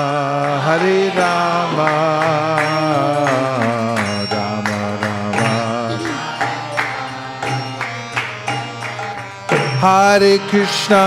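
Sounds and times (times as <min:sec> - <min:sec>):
harmonium chords: 0:00.0 - 0:11.0.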